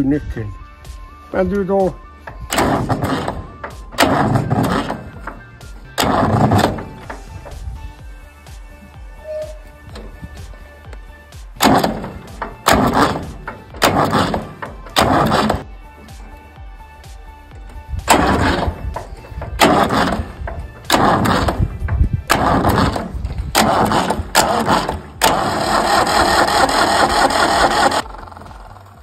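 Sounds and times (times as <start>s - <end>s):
tractor engine cranking: 1.6s - 29.0s.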